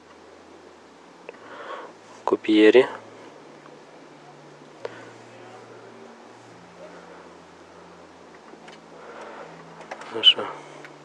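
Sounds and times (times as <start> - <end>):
low hum and hiss: 0.0 - 11.0.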